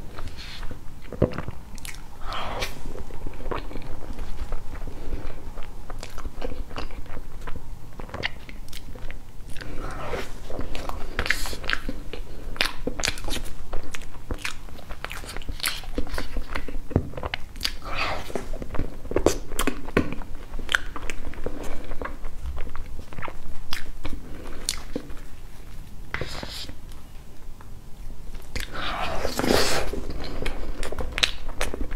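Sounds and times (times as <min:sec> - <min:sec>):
wet chewing and lip smacks: 0:00.2 - 0:09.7, 0:10.7 - 0:25.3.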